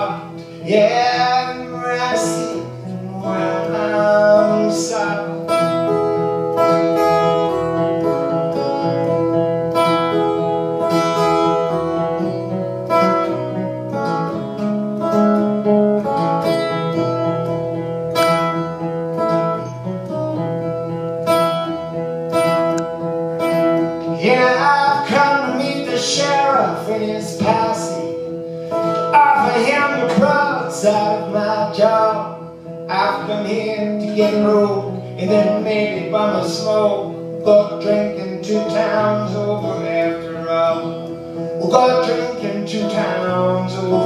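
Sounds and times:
acoustic guitar strumming: 0.0 - 44.0.

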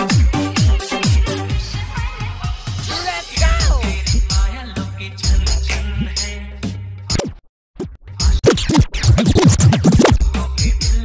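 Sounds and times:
electronic dance music: 2.8 - 4.3, 8.4 - 10.2
dj scratch sweeps: 8.4 - 10.2.

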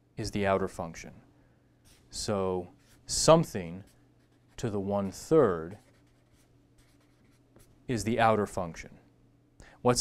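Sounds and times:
man speaking: 2.1 - 3.9, 4.6 - 5.9, 7.9 - 9.0
marker pen writing: 3.8 - 7.8.

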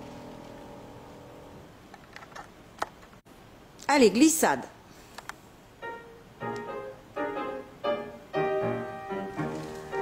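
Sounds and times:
piano chord ringing: 0.0 - 1.6, 5.8 - 10.0
faint hiss: 0.0 - 10.0.

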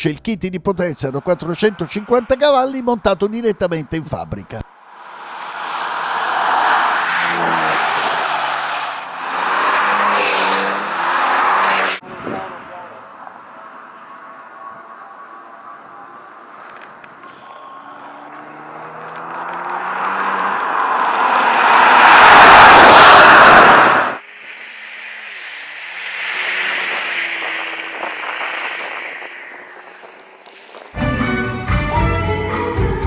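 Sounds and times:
car passing: 0.6 - 31.0
sports car passing at speed: 4.7 - 16.5, 17.8 - 31.0.

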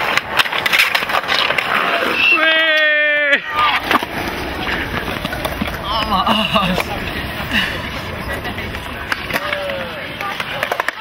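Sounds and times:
faint voices: 1.9 - 11.0
steady rushing noise: 3.4 - 10.3.

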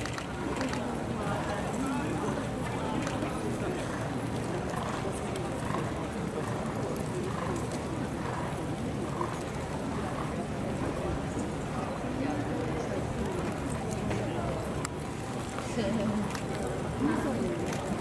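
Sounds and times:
murmur of crowd voices: 0.0 - 18.0
horse hoofbeats: 2.2 - 18.0.

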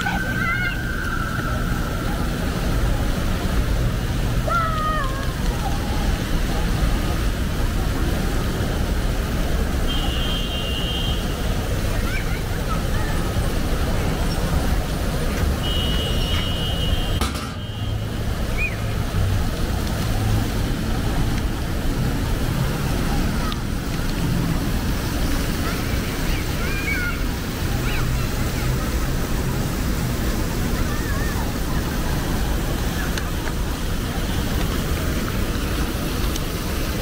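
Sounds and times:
fountain jets splashing: 0.0 - 37.0
traffic rumble: 0.0 - 37.0
scattered voices: 11.5 - 15.6.

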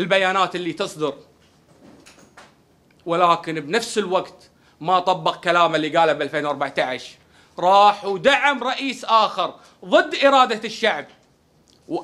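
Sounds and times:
man speaking: 0.0 - 1.3, 3.0 - 11.2
faint room noise: 0.0 - 12.0.

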